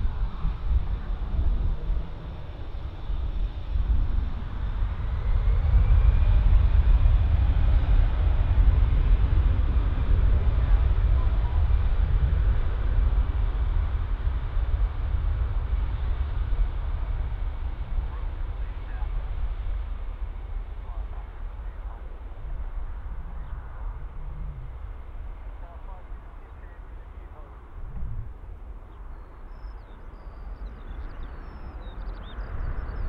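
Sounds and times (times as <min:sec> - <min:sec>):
jet engines rumbling: 0:00.0 - 0:33.0.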